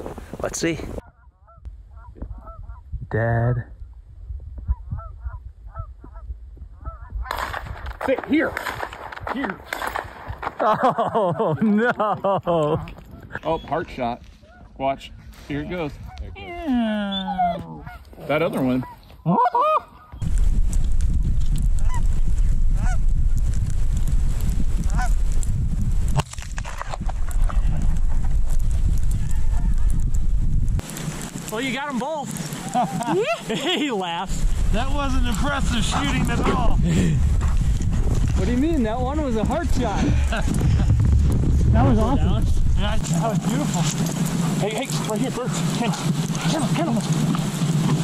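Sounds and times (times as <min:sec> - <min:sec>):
wind buffeting microphone: 0:00.0 - 0:16.8, 0:20.2 - 0:31.5, 0:32.6 - 0:48.0
geese honking: 0:01.0 - 0:02.8, 0:17.3 - 0:20.2
low rumble: 0:34.3 - 0:48.0.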